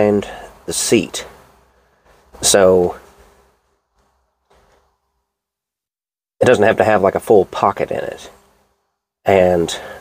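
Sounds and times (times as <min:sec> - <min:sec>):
thin steady hum: 0:00.0 - 0:05.7, 0:06.4 - 0:10.0.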